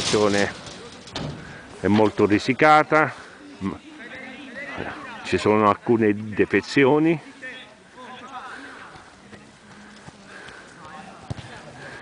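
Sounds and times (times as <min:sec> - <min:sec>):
faint distant voices: 0:00.0 - 0:12.0
low outdoor background: 0:00.0 - 0:12.0.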